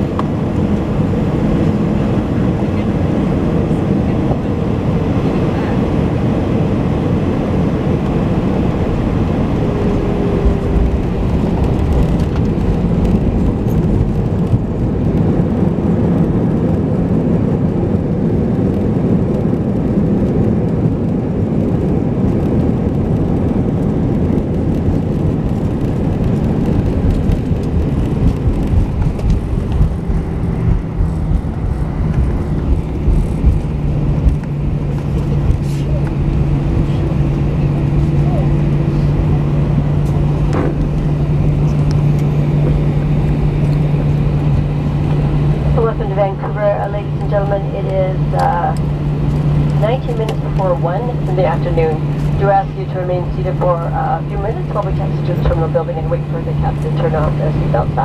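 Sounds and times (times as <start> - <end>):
low steady hum: 0.0 - 58.0
rumble of engines and wheels: 0.0 - 58.0.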